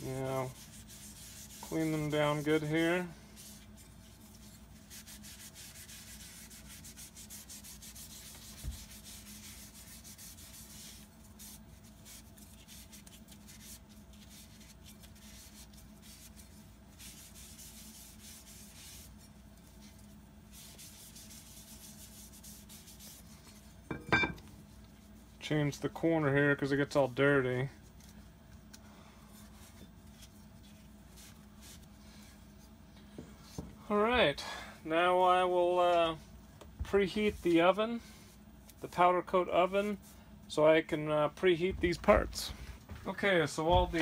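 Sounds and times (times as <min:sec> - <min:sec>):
cloth wiping metal plates: 0:00.0 - 0:25.5, 0:27.8 - 0:32.8, 0:36.9 - 0:40.2.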